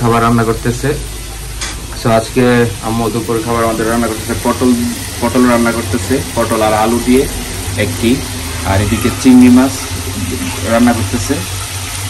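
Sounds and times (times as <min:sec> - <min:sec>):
onions sizzling in a pan: 0:00.0 - 0:12.0.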